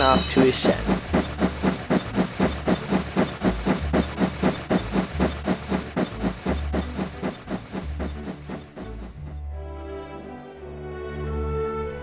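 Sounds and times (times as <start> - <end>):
steam locomotive chuffing: 0.0 - 9.5.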